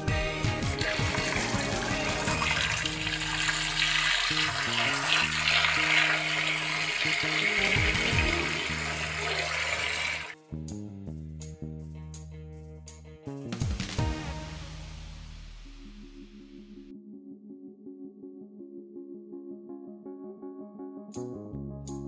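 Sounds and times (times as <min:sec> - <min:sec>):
background music with bass line: 0:00.0 - 0:22.0.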